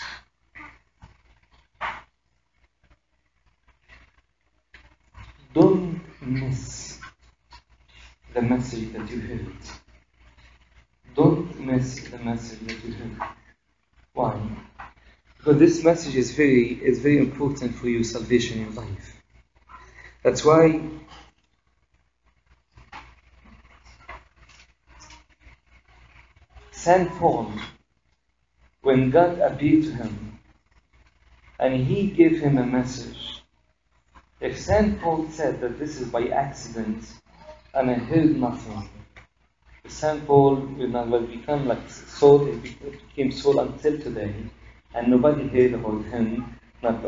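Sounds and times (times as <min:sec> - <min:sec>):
breathy puffs of air: 0:00.0 - 0:00.3
steady low hum: 0:04.9 - 0:21.4.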